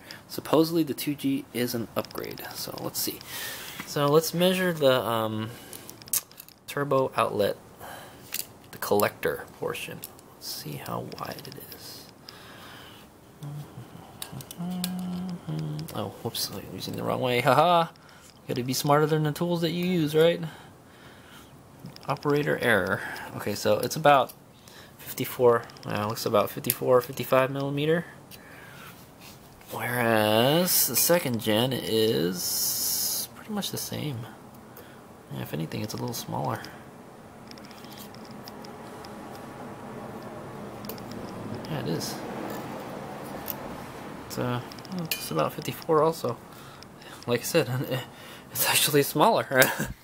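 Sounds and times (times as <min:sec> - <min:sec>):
man humming: 0:13.4 - 0:16.0.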